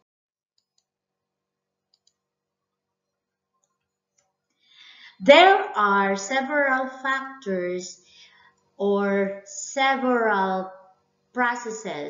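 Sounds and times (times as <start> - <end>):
faint quick clicks: 1.9 - 2.2.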